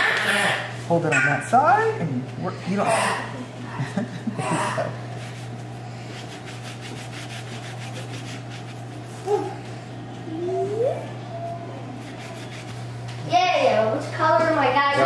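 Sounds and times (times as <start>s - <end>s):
cloth rubbing on plastic plate: 5.0s - 9.6s, 11.8s - 13.1s.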